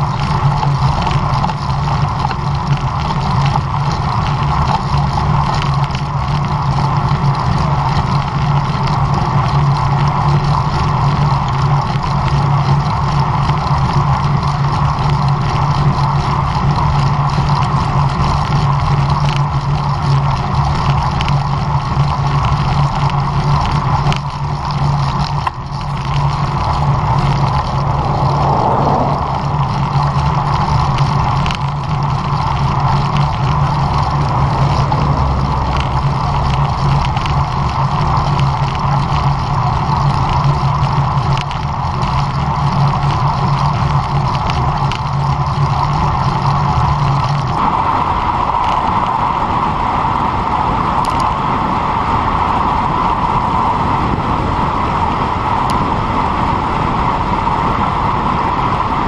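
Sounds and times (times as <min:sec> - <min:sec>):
wind rush: 0:26.3 - 0:38.9.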